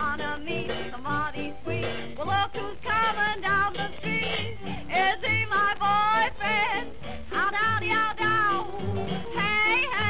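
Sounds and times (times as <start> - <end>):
old jazz band instrumental: 0.0 - 10.0.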